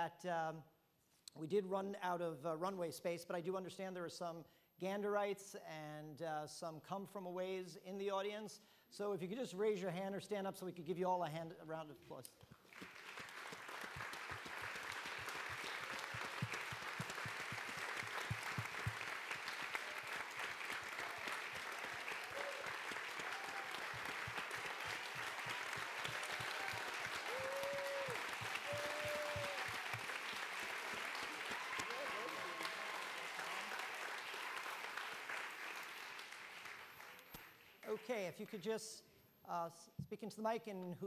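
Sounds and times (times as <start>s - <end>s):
audience applause: 12.6s - 38.0s.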